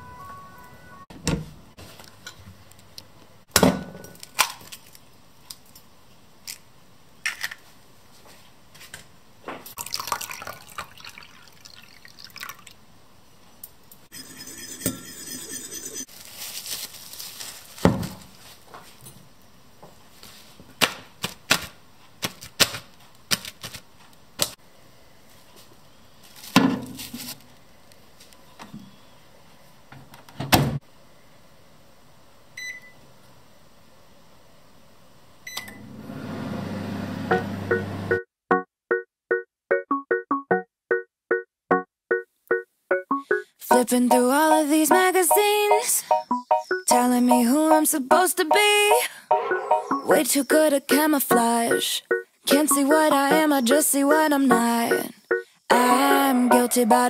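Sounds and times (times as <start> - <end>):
water pouring into bowl: 9.8 - 12.8
microwave humming: 35.5 - 38.2
piano notes: 37.3 - 57.0.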